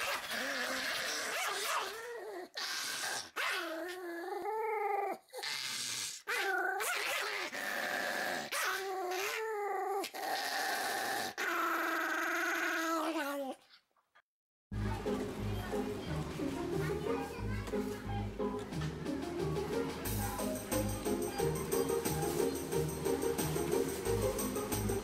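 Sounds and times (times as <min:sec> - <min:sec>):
small dog growling and snarling: 0:00.0 - 0:13.8.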